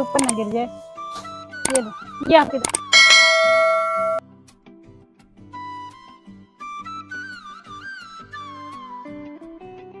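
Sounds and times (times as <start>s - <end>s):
faint background music: 0.0s - 3.3s
notification bell chime: 2.7s - 4.2s.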